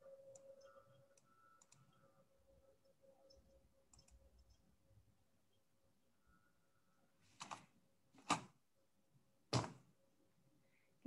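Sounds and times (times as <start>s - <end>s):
computer mouse clicks: 1.1s - 2.0s, 3.9s - 4.5s, 7.4s - 7.6s.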